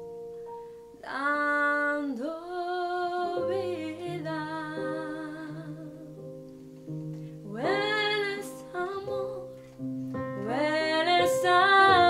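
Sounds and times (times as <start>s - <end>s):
woman singing: 1.0s - 6.3s, 7.4s - 9.6s, 10.3s - 12.0s.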